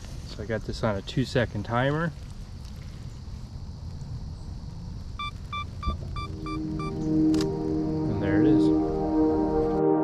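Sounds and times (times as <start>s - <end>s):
low rumble of outdoor noise: 0.0s - 10.0s.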